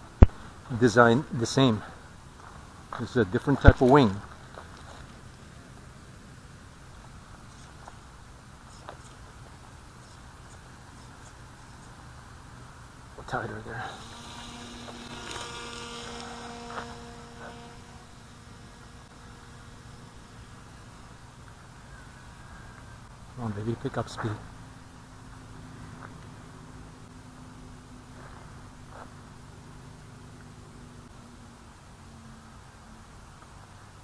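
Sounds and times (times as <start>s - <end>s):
high steady whine: 0.0s - 34.0s
model aircraft motor hum: 13.2s - 23.1s.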